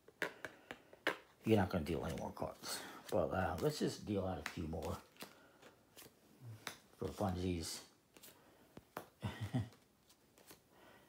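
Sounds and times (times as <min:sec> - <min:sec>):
playing cards being dealt: 0:00.1 - 0:10.7.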